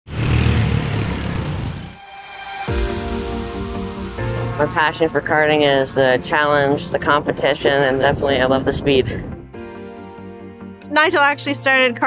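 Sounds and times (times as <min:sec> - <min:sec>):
go-kart engine: 0:00.1 - 0:02.0.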